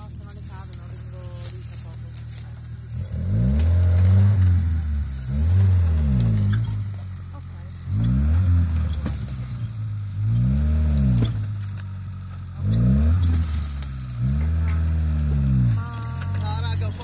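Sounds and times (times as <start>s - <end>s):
car engine revving hard: 3.0s - 7.2s, 7.8s - 11.8s, 12.4s - 17.0s.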